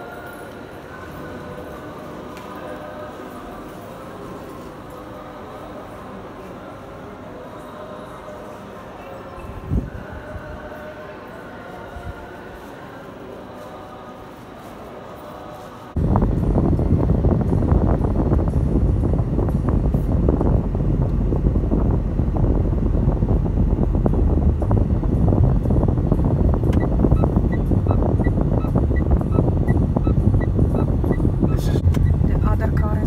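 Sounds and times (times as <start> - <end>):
music playing: 15.9 - 33.0
car road and wind noise: 16.0 - 33.0.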